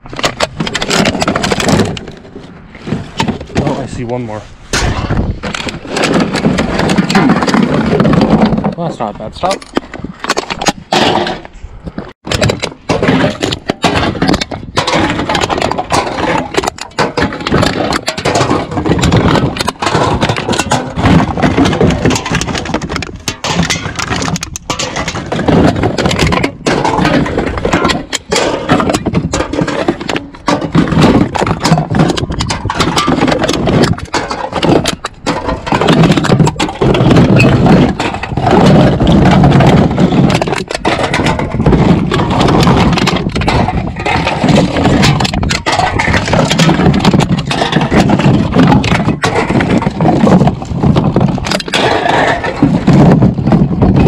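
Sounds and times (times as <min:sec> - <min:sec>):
cans and bottles clattering: 0:00.0 - 0:04.0, 0:04.7 - 0:11.5, 0:12.2 - 0:54.0.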